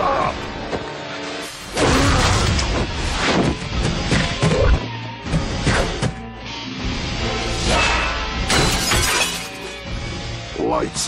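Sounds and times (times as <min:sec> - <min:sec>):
dramatic action score: 0:00.0 - 0:11.0.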